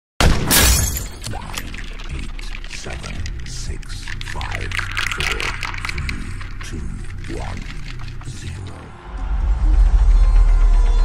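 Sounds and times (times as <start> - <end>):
glass shattering: 0.2 - 1.7.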